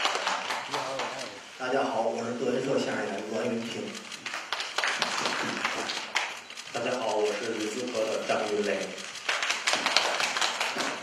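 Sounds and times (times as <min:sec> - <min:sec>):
audience clapping: 0:00.0 - 0:01.6, 0:03.6 - 0:11.0.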